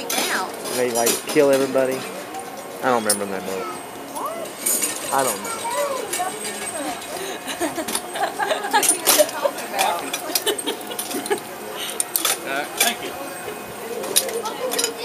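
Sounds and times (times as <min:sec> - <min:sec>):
chatter of voices: 0:00.0 - 0:15.0
metal chains clinking: 0:00.6 - 0:13.0, 0:14.0 - 0:15.0.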